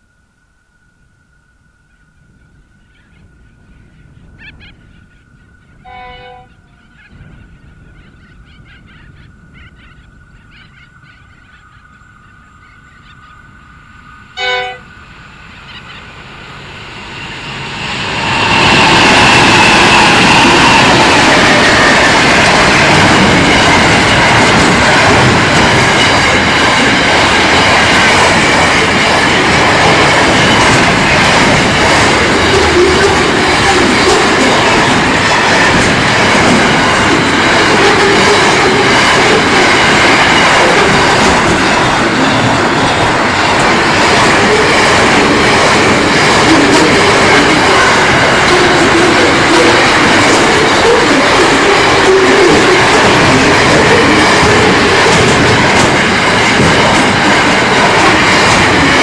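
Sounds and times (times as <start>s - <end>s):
freight train wheels on rails: 2.2s - 59.0s.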